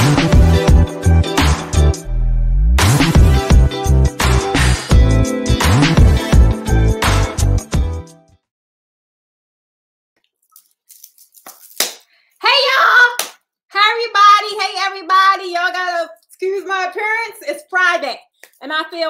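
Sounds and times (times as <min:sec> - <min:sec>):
woman talking: 0:12.4 - 0:19.0.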